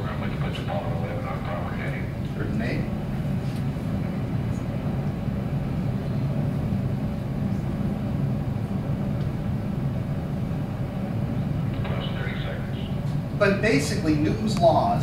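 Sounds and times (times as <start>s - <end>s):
rocket engines roaring over loudspeakers: 0.0s - 3.3s, 11.2s - 15.0s.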